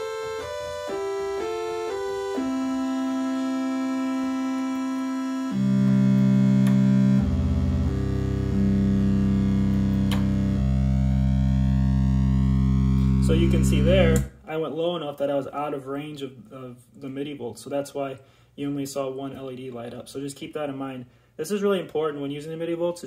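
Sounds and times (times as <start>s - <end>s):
synthesizer notes: 0.0s - 14.4s.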